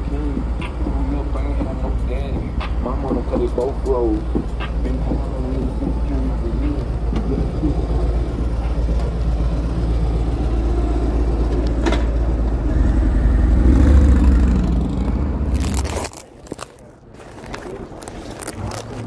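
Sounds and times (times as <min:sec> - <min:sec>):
street traffic: 0:00.0 - 0:19.0
vehicle passing: 0:00.0 - 0:19.0.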